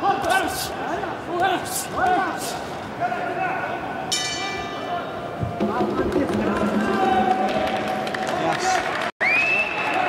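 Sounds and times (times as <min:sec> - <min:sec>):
boxing ring bell: 0:04.1 - 0:04.9.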